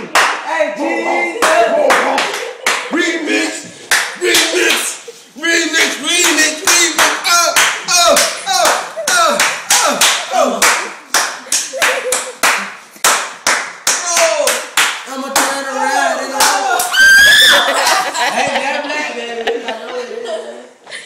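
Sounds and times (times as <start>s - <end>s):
rhythmic hand clapping: 0.0s - 0.5s, 1.4s - 17.0s, 17.7s - 18.2s
voices chanting: 0.4s - 11.8s, 13.9s - 19.3s.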